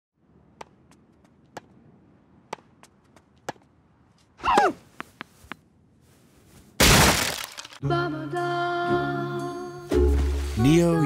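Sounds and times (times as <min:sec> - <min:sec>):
crash of something breaking: 0:06.8 - 0:07.8.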